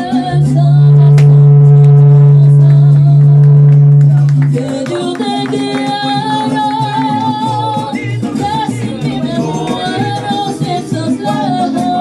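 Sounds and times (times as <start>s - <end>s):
mariachi band playing: 0.0s - 12.0s
long low held note: 0.7s - 4.6s.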